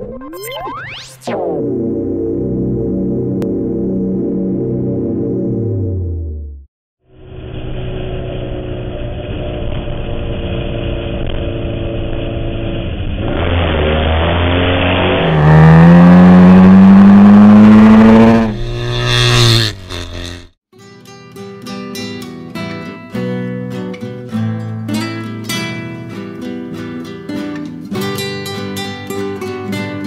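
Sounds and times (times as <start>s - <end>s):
motorcycle engine accelerating: 1.6s - 20.6s
acoustic guitar music: 20.0s - 30.0s.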